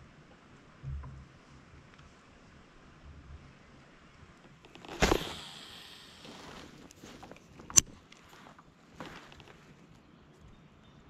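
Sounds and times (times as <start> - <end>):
fishing line and spool hiss: 4.7 - 7.5.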